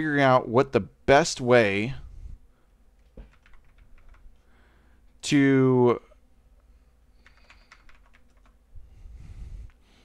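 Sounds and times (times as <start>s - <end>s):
faint keyboard typing: 3.0s - 4.5s, 7.1s - 8.6s.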